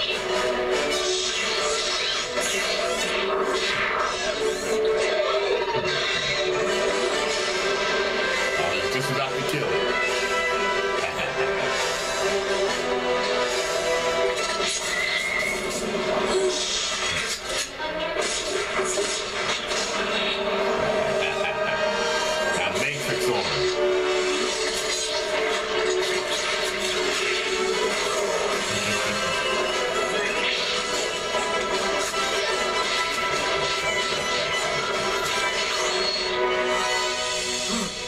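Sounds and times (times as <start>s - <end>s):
music playing: 0.0s - 38.0s.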